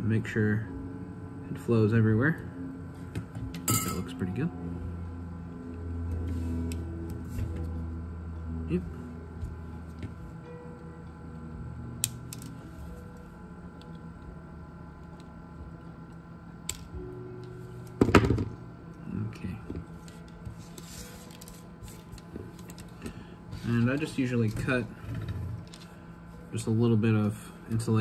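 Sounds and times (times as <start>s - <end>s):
faint steady hum: 0.0s - 28.0s.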